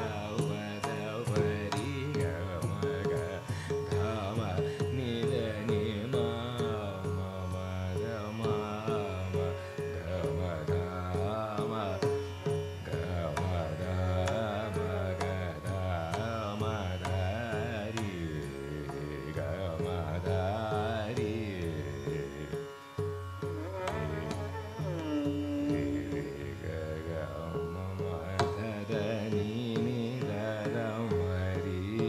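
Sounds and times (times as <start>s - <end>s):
man singing classical melody: 0.0s - 32.0s
tanpura drone: 0.0s - 32.0s.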